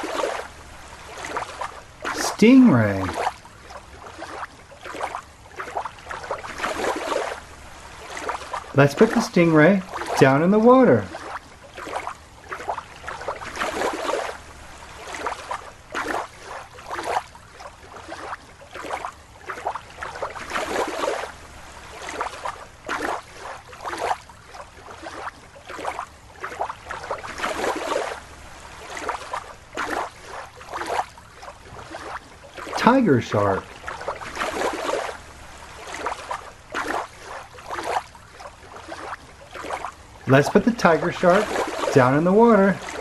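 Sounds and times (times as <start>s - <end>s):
water sloshing and splashing: 0.0s - 43.0s.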